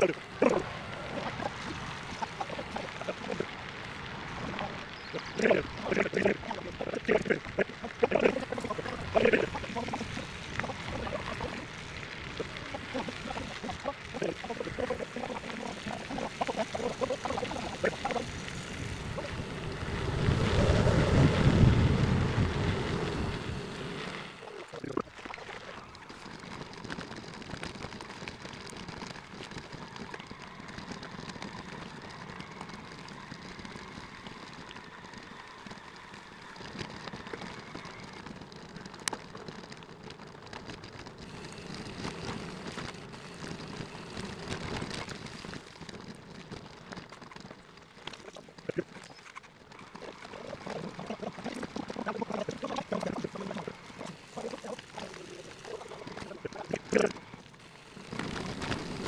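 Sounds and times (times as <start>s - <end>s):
tyres crackling on dirt: 0.0s - 59.0s.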